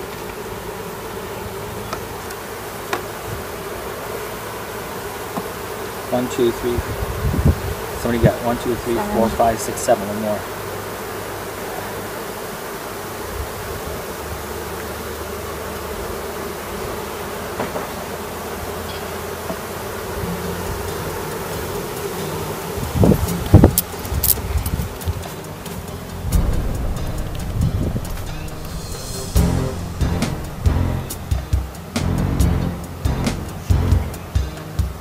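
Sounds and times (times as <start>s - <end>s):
honey bees buzzing: 0.0s - 35.0s.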